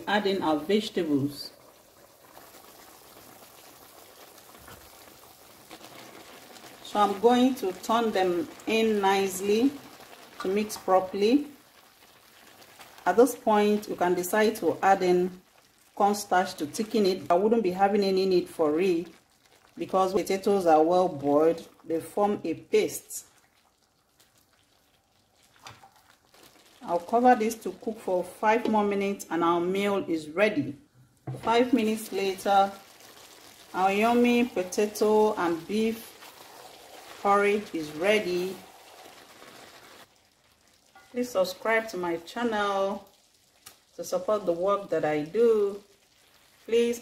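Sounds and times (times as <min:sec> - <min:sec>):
pot boiling with bubbling hiss: 0:00.0 - 0:47.0
person speaking: 0:26.8 - 0:32.8, 0:33.7 - 0:36.1, 0:37.2 - 0:38.7.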